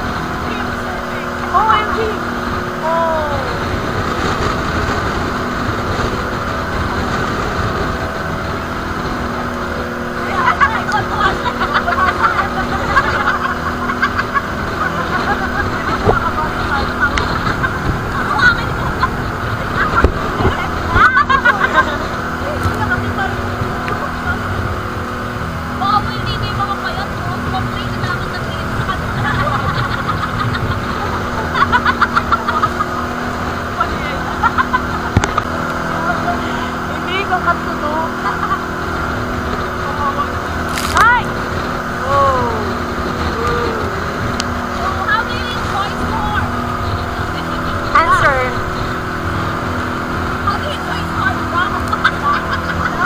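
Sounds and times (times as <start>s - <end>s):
boat engine droning: 0.0s - 53.0s
rough water: 0.0s - 53.0s
wind: 0.0s - 53.0s
passengers laughing and crying out: 10.2s - 23.5s, 26.5s - 35.2s, 42.0s - 48.7s, 50.3s - 53.0s.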